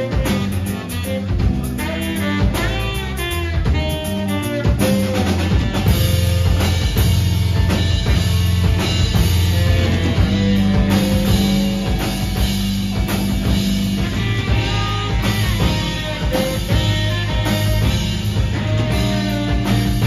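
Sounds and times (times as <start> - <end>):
bass guitar: 0.0 - 20.0
drum kit: 0.0 - 20.0
electric guitar: 0.0 - 20.0.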